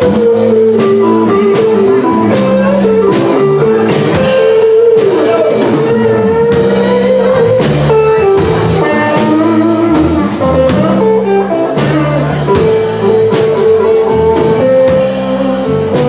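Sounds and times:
bass line: 0:00.0 - 0:16.0
electric guitar melody: 0:00.0 - 0:16.0
percussive hits: 0:01.6 - 0:06.9.

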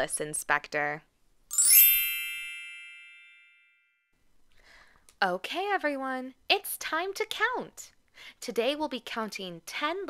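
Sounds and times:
sparkly bell-like chime: 0:01.5 - 0:04.1.

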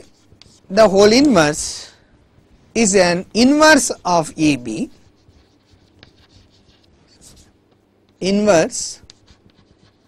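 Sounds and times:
chalk scratching on chalkboard: 0:00.0 - 0:00.8, 0:03.6 - 0:07.6, 0:08.8 - 0:10.0.

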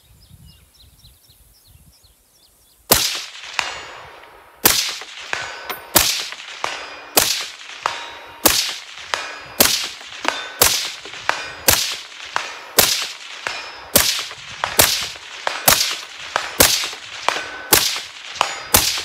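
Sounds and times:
distant steel target ringing: 0:02.9 - 0:19.0
rifle shots: 0:02.9 - 0:19.0.

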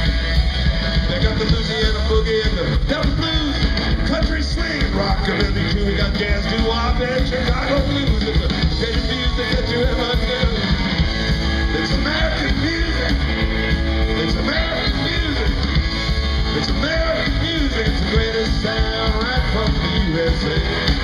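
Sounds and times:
rock band playing loudly: 0:00.0 - 0:21.0.

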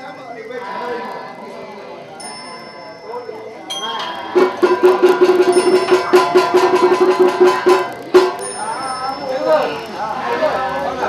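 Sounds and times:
small bell ringing: 0:02.2 - 0:09.8.

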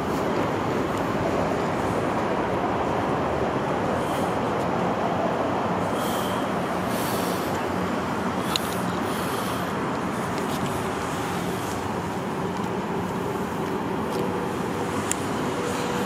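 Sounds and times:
roar of freeway traffic: 0:00.0 - 0:16.0.

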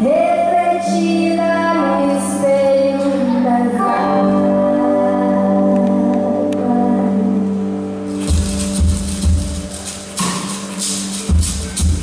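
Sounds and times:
live band music: 0:02.3 - 0:12.0
heavy drum and bass hits: 0:08.1 - 0:12.0.

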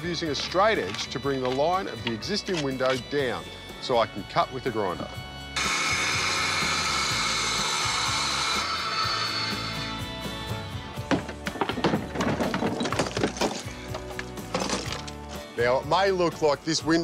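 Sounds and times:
angle grinder cutting brick: 0:05.6 - 0:10.4
bricks knocked and cracking: 0:11.0 - 0:15.3.

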